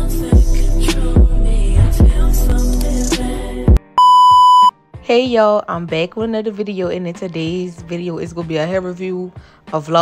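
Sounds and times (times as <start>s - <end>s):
loud electronic beep: 4.0s - 4.7s.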